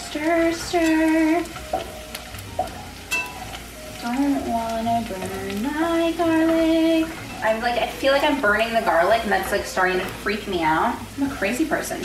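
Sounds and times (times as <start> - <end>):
garlic sizzling in hot oil: 0.0 - 12.0.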